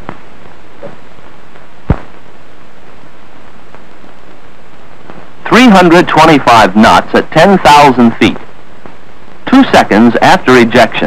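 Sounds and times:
sharp pop: 0:00.0 - 0:00.2, 0:01.8 - 0:02.2
old film soundtrack hiss: 0:00.0 - 0:11.0.

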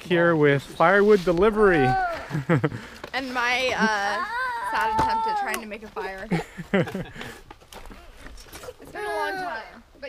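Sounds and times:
woman laughing: 0:03.7 - 0:04.9, 0:06.0 - 0:07.3.

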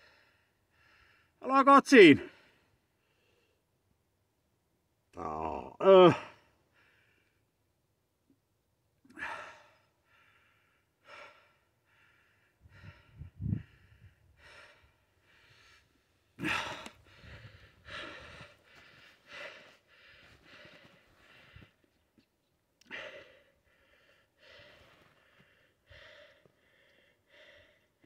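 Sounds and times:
person breathing in puffs: 0:09.2 - 0:21.9, 0:22.8 - 0:28.0.

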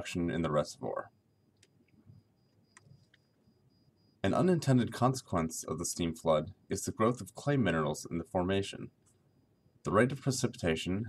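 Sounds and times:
thin high whine: 0:00.0 - 0:11.0
faint clicks: 0:01.5 - 0:03.4.

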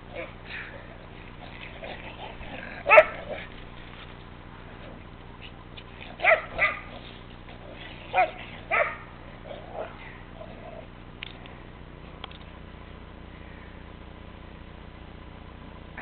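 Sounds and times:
dog barking: 0:02.8 - 0:03.5, 0:06.2 - 0:06.9, 0:08.1 - 0:09.1.

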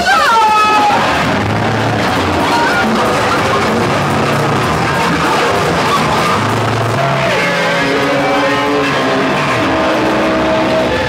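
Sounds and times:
loud noise music with held tones: 0:00.0 - 0:11.0.

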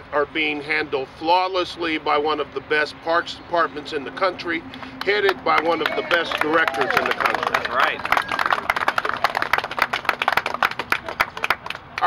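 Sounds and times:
hands clapping: 0:04.7 - 0:12.0.

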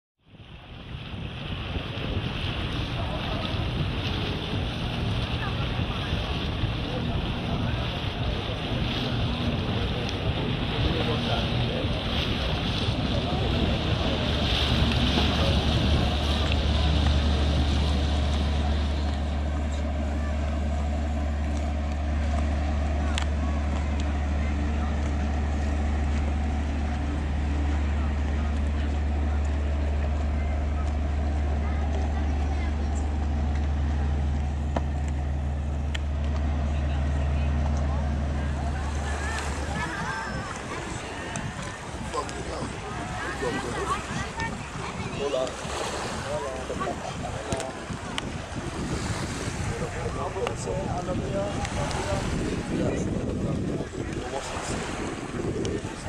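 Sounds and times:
boat engine drone: 0:00.2 - 0:56.0
water noise: 0:00.2 - 0:56.0
wind: 0:00.2 - 0:56.0
voices: 0:01.1 - 0:56.0.

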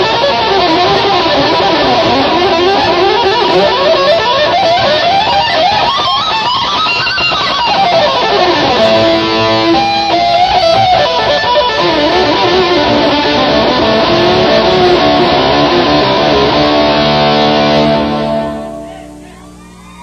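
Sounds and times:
live rock band playing: 0:00.0 - 0:19.2
lead guitar melody: 0:00.0 - 0:20.0.

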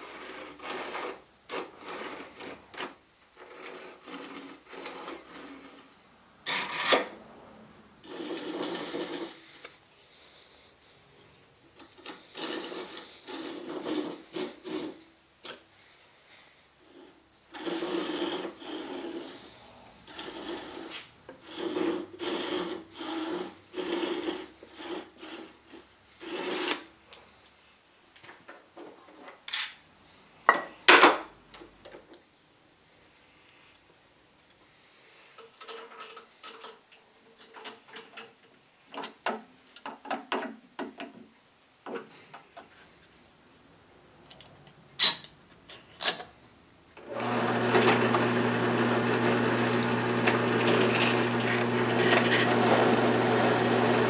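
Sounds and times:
backsaw cutting wood: 0:20.1 - 0:25.5, 0:47.0 - 0:54.0.

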